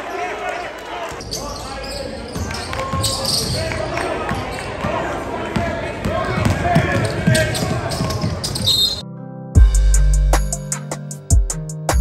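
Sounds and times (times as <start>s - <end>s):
indistinct voices in a hall: 0.0s - 9.0s
basketball bouncing on wooden floor: 5.6s - 8.7s
music with heavy bass drum beat: 9.6s - 12.0s.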